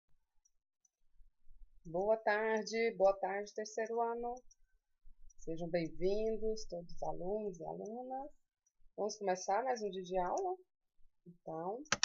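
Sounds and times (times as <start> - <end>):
woman speaking: 1.9 - 4.4, 5.5 - 8.3, 9.0 - 10.6, 11.3 - 11.9.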